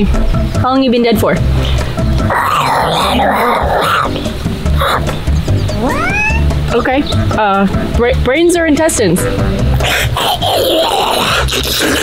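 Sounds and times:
background music with low beat: 0.0 - 10.2
woman growling zombie voice: 9.8 - 12.0.

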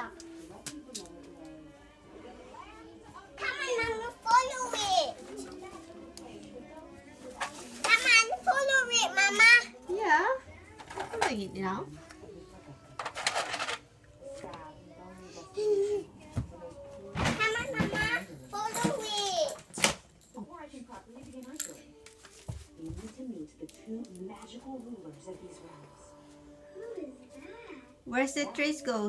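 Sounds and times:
background music: 0.0 - 29.0
rustling and scuffing: 22.1 - 23.3
faint indistinct voice: 25.1 - 28.8
faint voice: 26.7 - 28.0.

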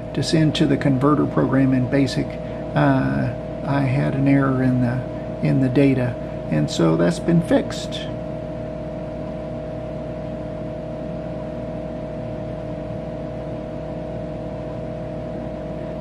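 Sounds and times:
computer fan hum: 0.0 - 16.0
mid-pitched whine: 0.0 - 16.0.

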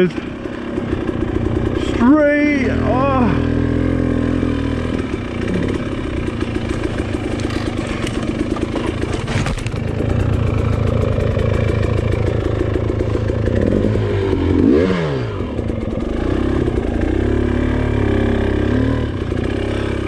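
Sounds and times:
dirt bike engine running: 0.0 - 20.0.

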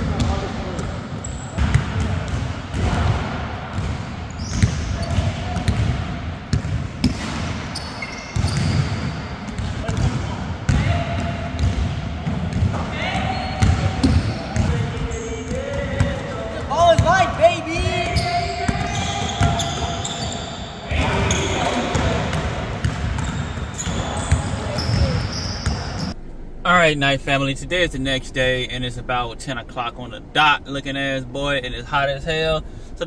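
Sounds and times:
basketballs bouncing on wooden floor: 0.0 - 17.2, 17.8 - 20.2, 21.0 - 26.2
players' voices: 0.0 - 33.0
sneaker squeaks: 0.2 - 1.8, 3.8 - 5.8, 6.6 - 10.9, 12.5 - 15.7, 17.8 - 22.1, 23.1 - 26.2.

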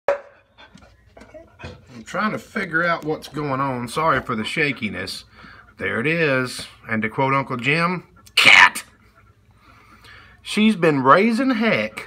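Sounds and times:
dog barking: 0.1 - 0.4.

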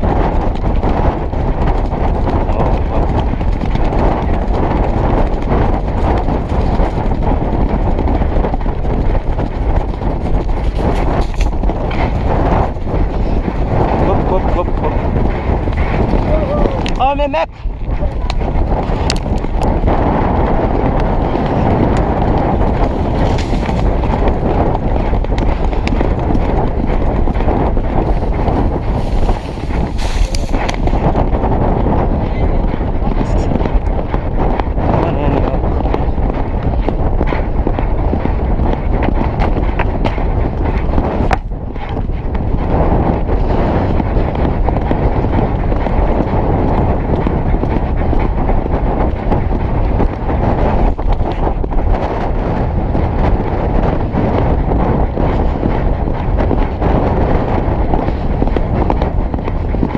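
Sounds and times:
horse hoofbeats galloping on grass: 0.0 - 59.9
wind buffeting microphone: 0.0 - 59.9.

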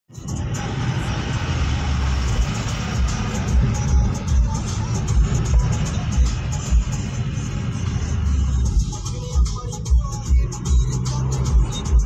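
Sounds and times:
music playing: 0.1 - 12.0
road and engine noise inside car: 0.1 - 12.0.

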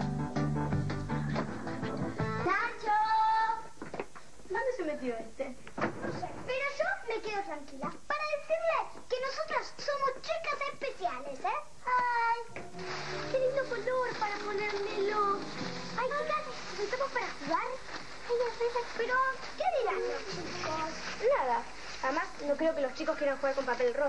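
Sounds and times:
background music: 0.0 - 3.0, 11.7 - 18.3
children talking: 13.3 - 21.6.

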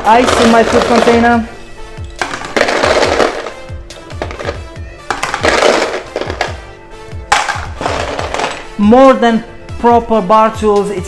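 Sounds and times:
ice cubes clattering into container: 0.0 - 1.4, 2.2 - 3.6, 4.2 - 6.6, 7.3 - 8.7
background music: 0.0 - 11.0.

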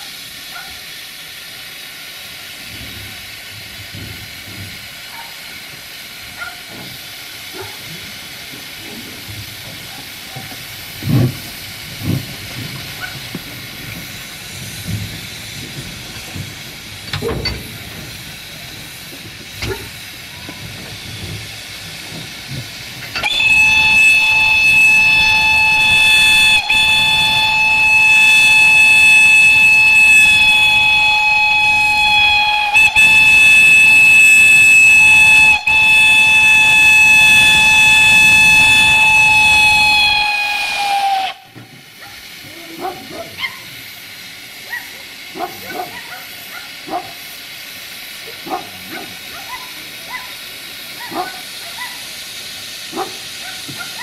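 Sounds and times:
steam hissing: 0.0 - 54.0
steam whistle blast: 23.1 - 41.6.

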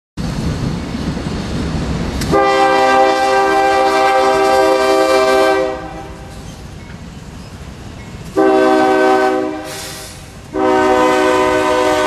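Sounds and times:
passing train rumble: 0.2 - 12.0
locomotive air horn blast: 2.3 - 6.4, 8.4 - 12.0.

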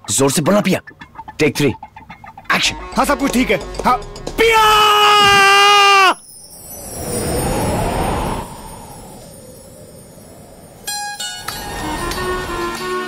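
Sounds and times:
plucked strings melody: 0.8 - 4.7, 10.9 - 13.0
street traffic noise: 6.0 - 13.0
passing vehicle whoosh: 6.3 - 12.8.

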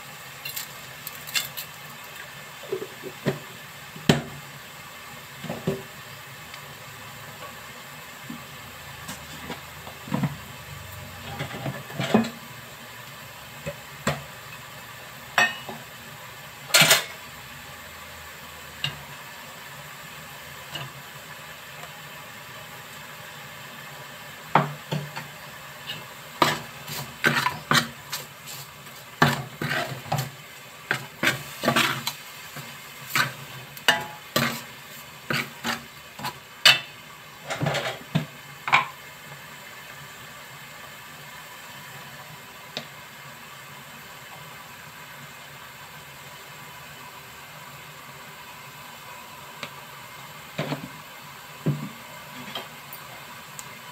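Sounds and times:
metal ladle scraping metal pot: 25.8 - 28.3, 29.2 - 30.3, 33.9 - 34.7.

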